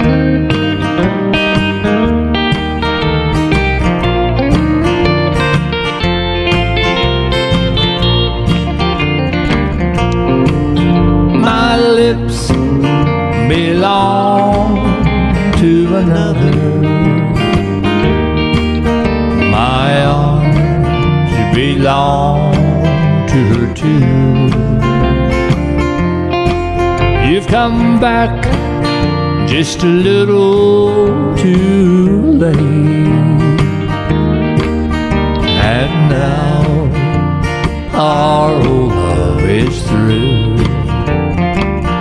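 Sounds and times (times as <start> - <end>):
electric guitar lead line: 0.0 - 42.0
strummed acoustic guitar: 0.0 - 42.0.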